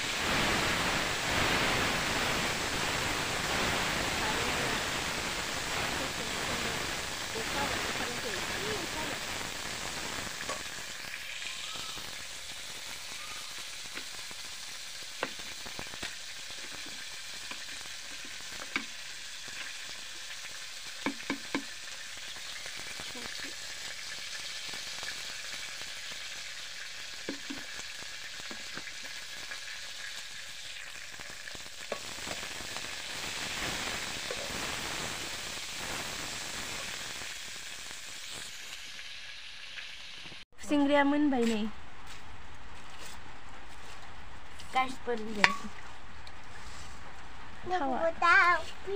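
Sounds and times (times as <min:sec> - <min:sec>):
insects sizzling in a wok: 0:00.0 - 0:48.9.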